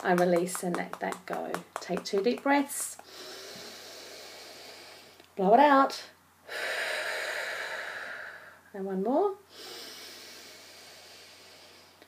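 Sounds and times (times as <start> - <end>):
person breathing out: 3.0 - 5.2.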